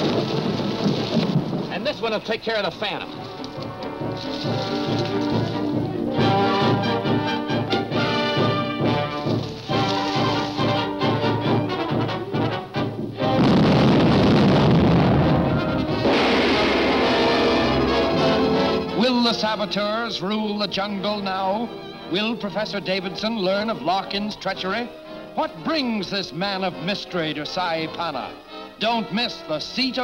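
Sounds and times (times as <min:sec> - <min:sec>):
orchestral music with brass: 0:00.1 - 0:30.0
crash roar with low rumbles: 0:13.4 - 0:18.7.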